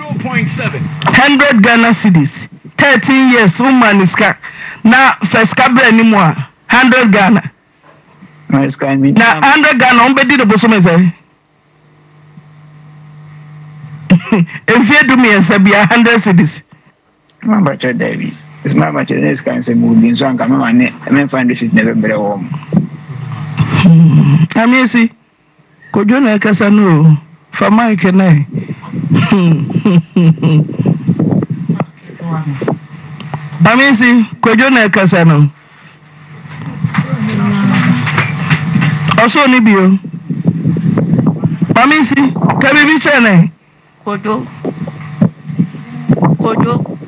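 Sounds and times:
low steady hum: 0:00.0 - 0:47.0
low indistinct voice: 0:36.6 - 0:38.3.

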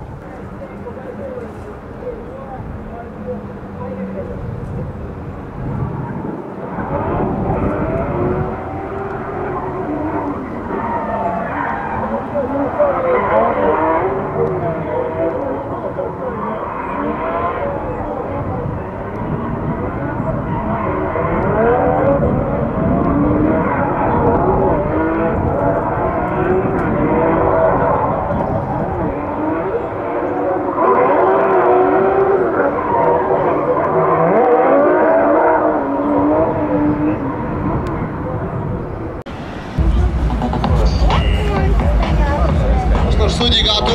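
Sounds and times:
car engines revving: 0:00.0 - 0:43.9.

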